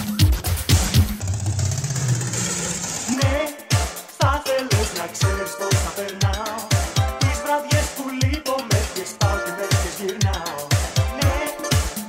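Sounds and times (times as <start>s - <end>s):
dance beat: 0.0s - 12.0s.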